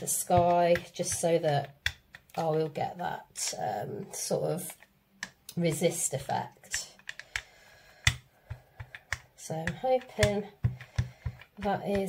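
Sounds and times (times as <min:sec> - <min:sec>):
rubber roller clicking on gel: 0:00.1 - 0:02.8, 0:06.6 - 0:12.0.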